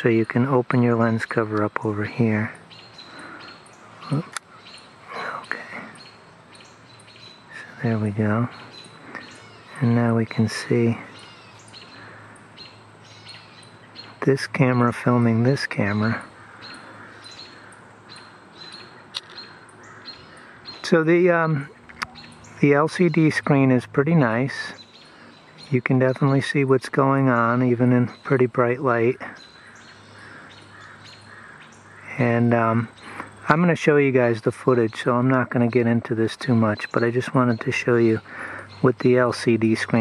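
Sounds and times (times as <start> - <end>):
small birds chirping: 0.0 - 40.0
soft outdoor hiss: 0.0 - 40.0.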